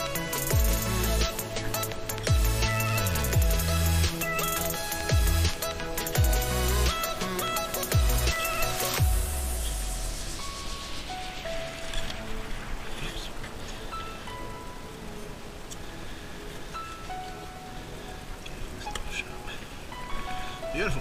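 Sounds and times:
sparse held music notes: 0:00.0 - 0:21.0
steady hiss: 0:00.0 - 0:21.0.

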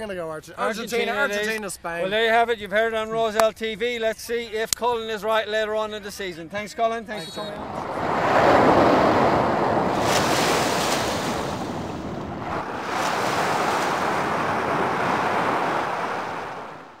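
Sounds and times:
small waves washing onto sand: 0:07.3 - 0:17.0.

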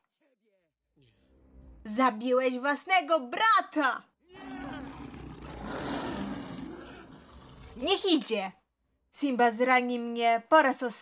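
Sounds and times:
lion roaring: 0:04.3 - 0:08.0.

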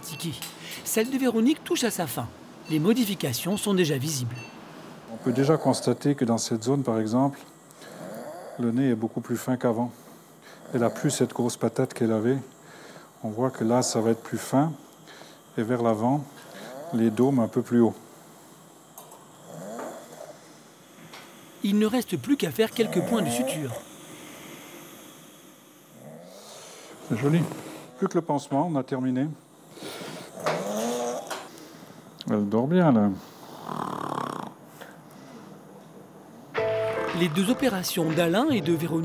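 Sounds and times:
soft snore-like breath: 0:07.8 - 0:08.7, 0:09.9 - 0:11.3, 0:16.3 - 0:17.3, 0:19.4 - 0:20.9, 0:22.9 - 0:28.0, 0:29.7 - 0:32.0, 0:33.2 - 0:35.6.

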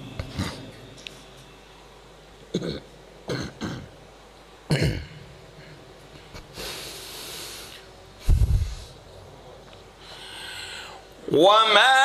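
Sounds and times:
man clearing his throat: 0:02.5 - 0:03.9, 0:04.7 - 0:05.2
man coughing: 0:04.7 - 0:05.2
long breath drawn in: 0:06.6 - 0:09.0, 0:10.0 - 0:11.1
man reciting: 0:11.3 - 0:12.0.

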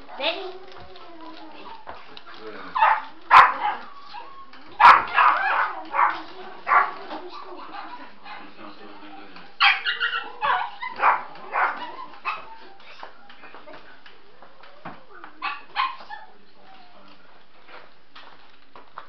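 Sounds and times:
voices: 0:00.0 - 0:17.5
puppy barking and yapping: 0:02.8 - 0:08.4, 0:09.6 - 0:12.7, 0:15.4 - 0:16.3.

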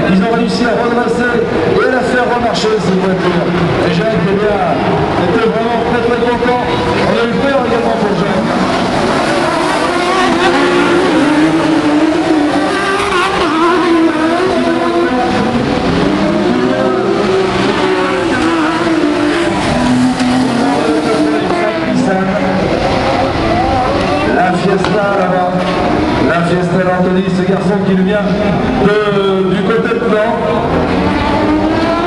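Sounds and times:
race car engines revving: 0:00.0 - 0:32.0.

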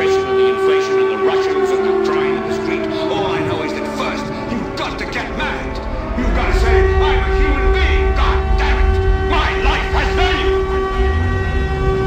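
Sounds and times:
droning metal chord: 0:00.0 - 0:12.0
deep rumble: 0:02.8 - 0:12.0.

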